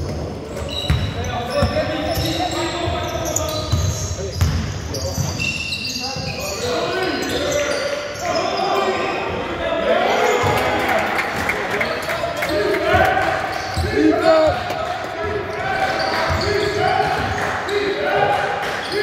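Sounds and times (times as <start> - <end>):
players' voices: 0.0 - 19.0.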